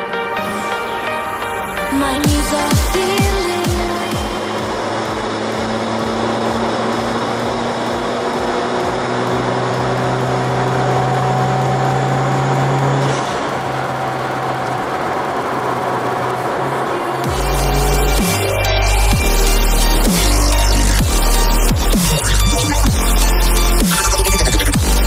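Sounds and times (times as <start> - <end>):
car engine drone: 0.0 - 25.0
tyre and road noise: 0.0 - 25.0.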